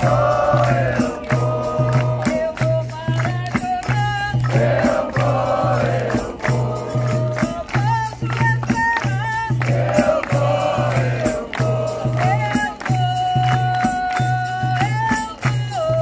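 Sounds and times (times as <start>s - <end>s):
group singing call-and-response: 0.0s - 16.0s
hand drum: 0.0s - 16.0s
tambourine: 0.0s - 16.0s.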